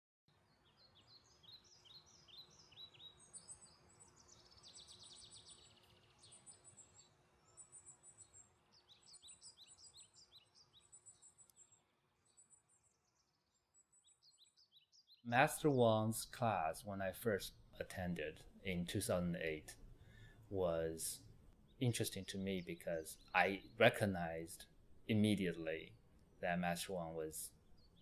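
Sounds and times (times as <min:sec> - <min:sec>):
faint birdsong chirps and trills: 0:00.3 - 0:28.0
soft background hiss: 0:15.3 - 0:28.0.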